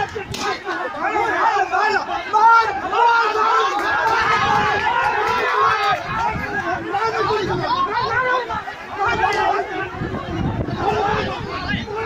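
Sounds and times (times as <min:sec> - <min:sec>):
babble of overlapping voices: 0:00.0 - 0:12.0.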